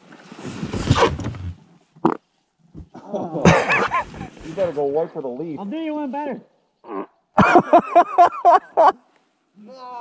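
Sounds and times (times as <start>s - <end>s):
person laughing loudly: 3.0s - 4.1s, 7.4s - 9.0s.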